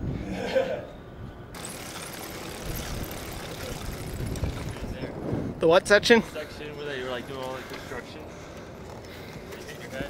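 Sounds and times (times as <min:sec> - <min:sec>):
wind noise on microphone: 0:00.0 - 0:00.4, 0:02.5 - 0:06.2
bike tyre rolling over concrete: 0:01.6 - 0:05.3.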